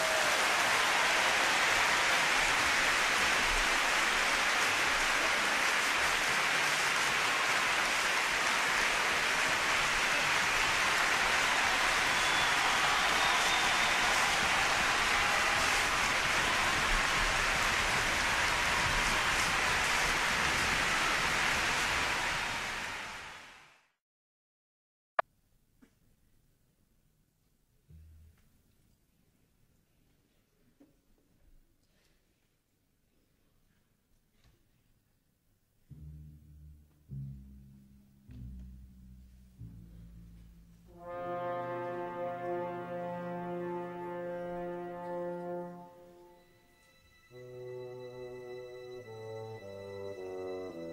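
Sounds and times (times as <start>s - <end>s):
large audience applauding: 0.0s - 23.8s.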